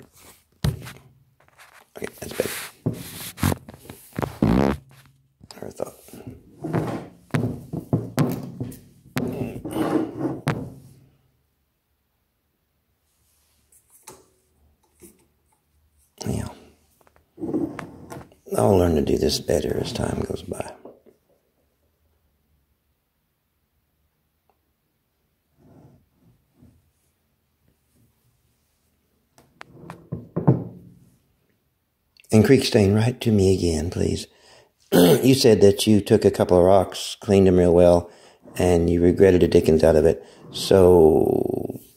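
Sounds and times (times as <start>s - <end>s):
phone rubbing and scraping on table: 0.0s - 5.1s, 6.0s - 8.0s, 9.2s - 10.7s, 17.4s - 18.3s
knocks against wooden tabletop: 6.7s - 9.4s, 10.4s - 10.8s, 30.1s - 30.8s.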